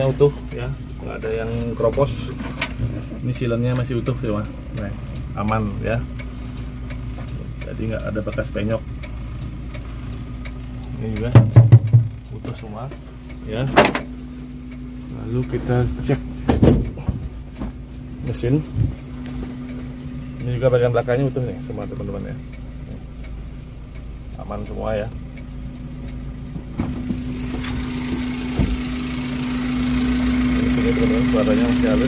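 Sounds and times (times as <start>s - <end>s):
car engine idling: 0.0s - 32.0s
sharp knocks: 11.4s - 12.2s, 26.6s - 28.8s.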